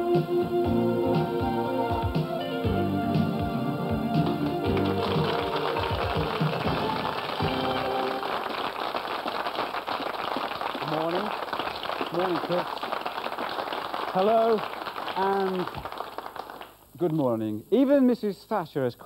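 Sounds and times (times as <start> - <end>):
keyboard theme tune: 0.0 - 8.5
audience applause: 3.9 - 16.8.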